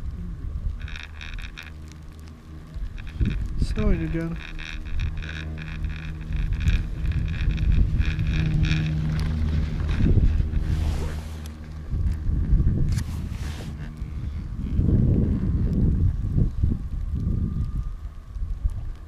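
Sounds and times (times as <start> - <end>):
chairlift mechanical hum: 0.0 - 19.0
wind buffeting microphone: 0.0 - 19.0
rhythmic clatter of sheave wheels: 0.8 - 11.8.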